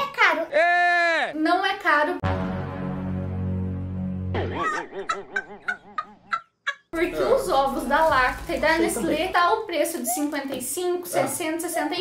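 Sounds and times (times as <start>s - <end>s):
boy laughing: 4.4s - 6.9s.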